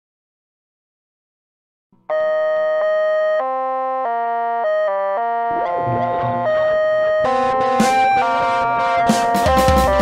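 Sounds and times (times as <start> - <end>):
synthesizer chords: 2.1 - 10.0
fuller musical backing: 5.6 - 10.0.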